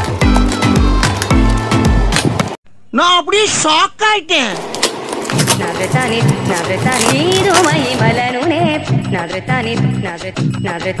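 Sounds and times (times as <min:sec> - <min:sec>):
music with sliding bass beat: 0:00.0 - 0:02.6.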